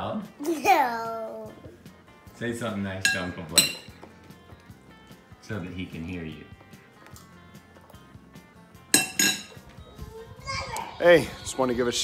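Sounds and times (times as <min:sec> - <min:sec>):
girl squealing: 0:10.1 - 0:11.0.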